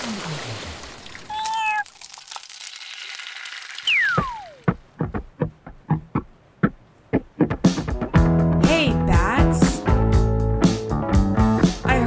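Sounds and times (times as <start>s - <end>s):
wash of noise: 0.0s - 1.3s
falling whistle glide: 3.8s - 4.6s.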